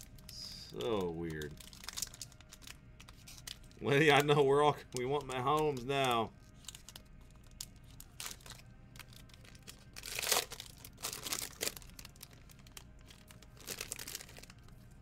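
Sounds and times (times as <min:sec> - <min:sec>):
foil wrapper tearing and crinkling: 0:00.2 - 0:14.8.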